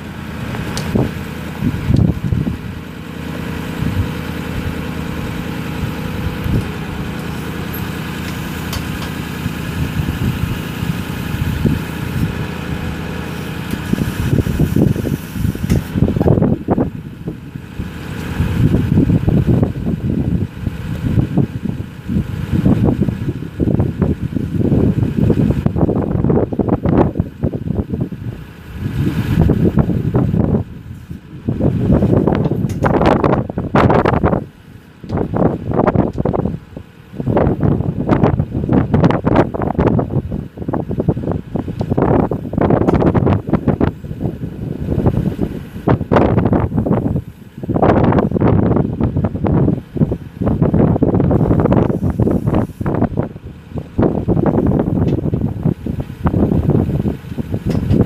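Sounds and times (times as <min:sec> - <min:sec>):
wind buffeting microphone: 0:00.0 - 0:02.8, 0:03.6 - 0:58.0
diesel engine idling: 0:00.0 - 0:58.0.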